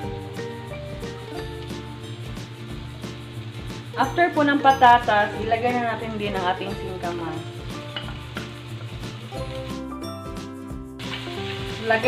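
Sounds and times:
vegetables sizzling in oil: 0:00.0 - 0:10.4, 0:11.0 - 0:12.0
background music: 0:00.0 - 0:12.0.

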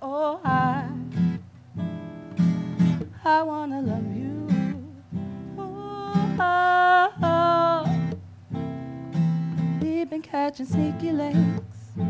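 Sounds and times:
woman singing wordless notes: 0:00.0 - 0:01.4, 0:03.0 - 0:08.2, 0:09.6 - 0:12.0
acoustic guitar strumming: 0:00.4 - 0:12.0.

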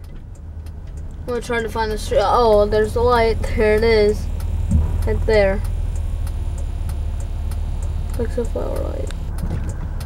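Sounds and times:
faint light ticks: 0:00.0 - 0:02.8, 0:03.6 - 0:10.0
car rumble from inside: 0:00.0 - 0:10.0.

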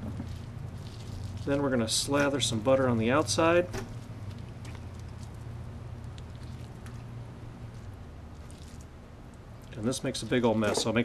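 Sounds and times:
soft squishing: 0:00.0 - 0:11.0
steady low hum: 0:00.0 - 0:11.0.

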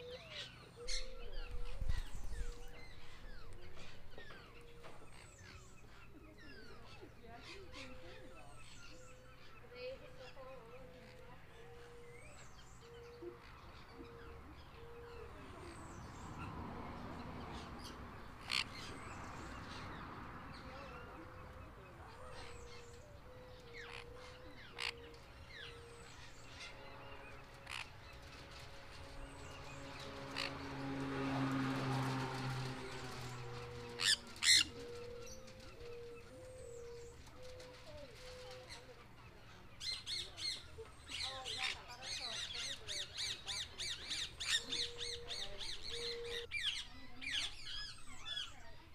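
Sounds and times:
faint birds chirping: 0:00.0 - 0:48.9
parrots squawking: 0:22.0 - 0:28.6, 0:29.4 - 0:30.8, 0:32.0 - 0:39.0.

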